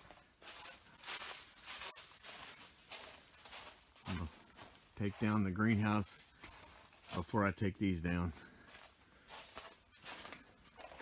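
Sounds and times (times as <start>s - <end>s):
footsteps crunching on dry leaves: 0.0s - 11.0s.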